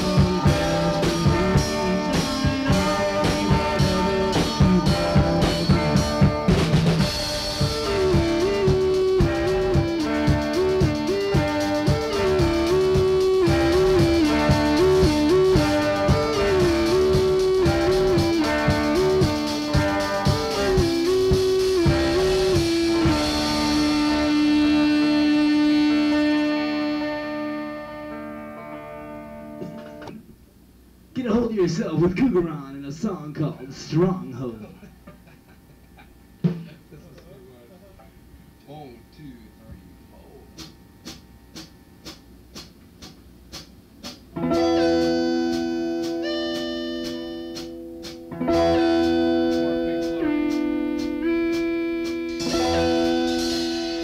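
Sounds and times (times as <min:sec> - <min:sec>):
lead melody line: 0:00.0 - 0:30.2, 0:44.3 - 0:54.0
guitar: 0:00.0 - 0:30.6, 0:44.0 - 0:54.0
drums: 0:00.0 - 0:54.0.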